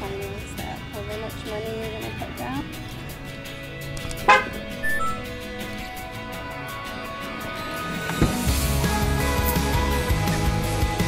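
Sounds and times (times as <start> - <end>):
background music: 0.0 - 11.0
car horn chirp: 4.3 - 5.4
brief beep: 4.8 - 5.4.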